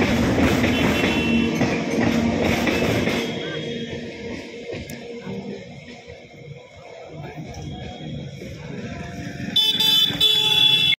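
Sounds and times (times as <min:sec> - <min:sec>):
train horn blasts: 0:00.6 - 0:01.7, 0:09.5 - 0:11.0.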